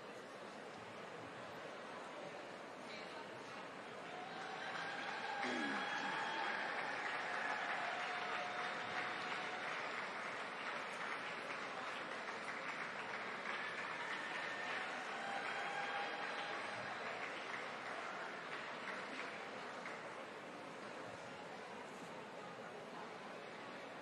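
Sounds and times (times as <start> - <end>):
audience applauding: 4.0 - 20.2.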